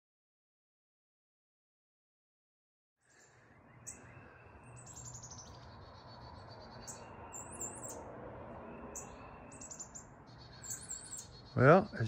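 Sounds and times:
songbird trill: 3.0s - 12.0s
high bird chirps: 3.1s - 12.0s.

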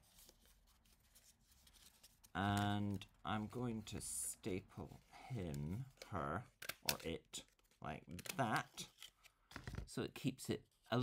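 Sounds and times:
thin card rustling: 0.0s - 3.0s.

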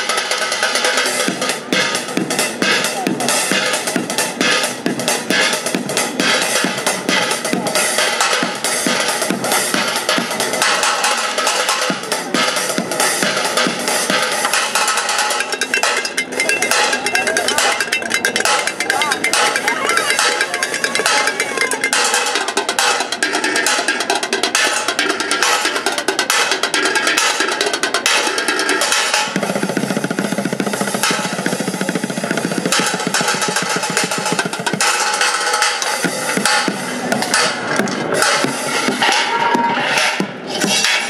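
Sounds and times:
drumming on pots and pans: 11.8s - 41.0s.

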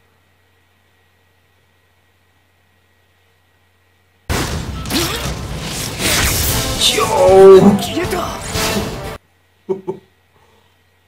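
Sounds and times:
dramatic music: 4.3s - 9.2s
loud drawn-out cry: 6.7s - 8.4s.

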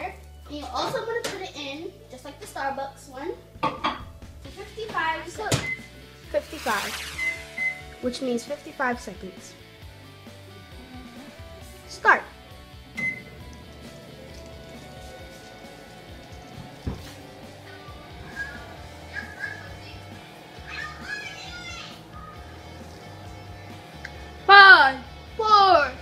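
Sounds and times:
game music: 5.8s - 11.8s
short beep: 6.9s - 8.0s
microwave oven humming: 7.2s - 8.2s, 12.5s - 25.8s.

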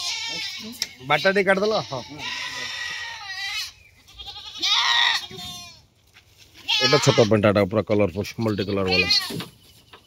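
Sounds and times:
goats bleating: 0.0s - 5.9s, 6.5s - 7.6s, 8.3s - 9.5s.

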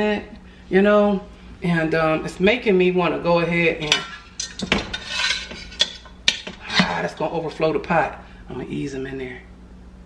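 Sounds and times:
metal pot clinking: 3.8s - 6.9s
pot scraping: 3.8s - 7.2s.

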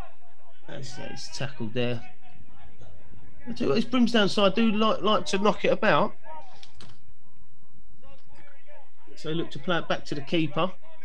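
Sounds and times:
players shouting: 0.0s - 6.8s, 8.2s - 11.0s.

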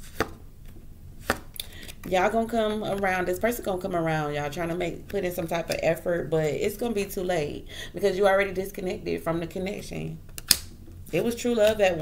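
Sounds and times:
cards knocking on a tabletop: 1.2s - 1.5s.

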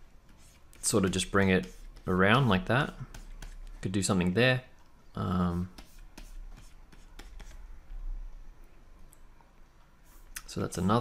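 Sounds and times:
faint low hum: 0.0s - 11.0s
stylus scratching on tablet: 0.2s - 4.1s, 5.4s - 7.8s, 10.0s - 11.0s.

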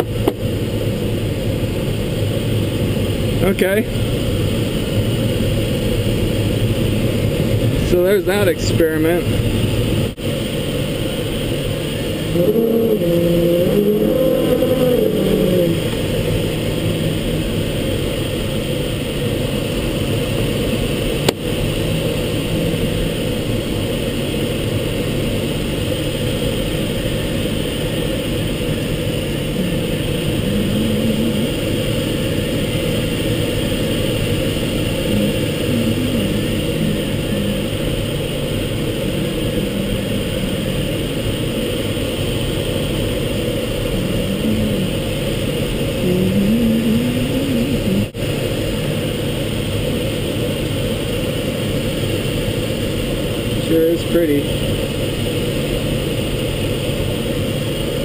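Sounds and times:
air rushing over glider cockpit: 0.0s - 58.0s.

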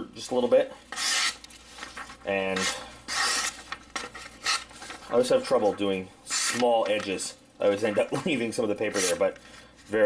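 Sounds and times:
knife slicing paper: 0.9s - 2.0s, 2.6s - 4.7s.

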